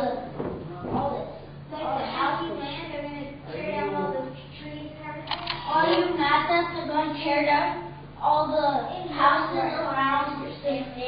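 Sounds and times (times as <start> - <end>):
sharp clicks: 5.2 - 5.7.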